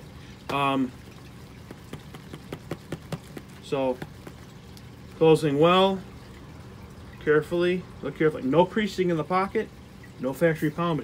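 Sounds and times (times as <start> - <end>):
aquarium water trickling: 0.0 - 11.0.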